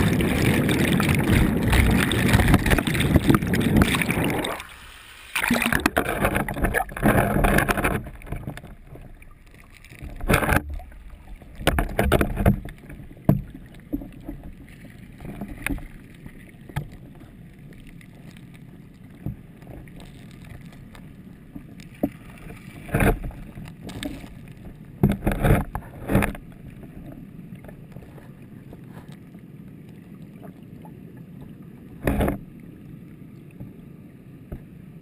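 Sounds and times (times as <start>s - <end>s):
underwater bubbling turbulence: 0.0s - 33.7s.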